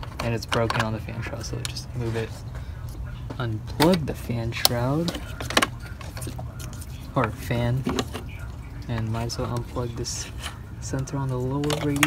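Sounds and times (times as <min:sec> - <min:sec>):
low steady hum: 0:00.0 - 0:12.0
plastic connector clicks and rattles: 0:11.6 - 0:12.0.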